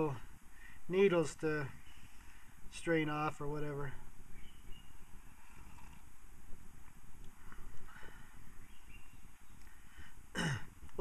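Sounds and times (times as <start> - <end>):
breeze on the microphone: 0.0 - 11.0.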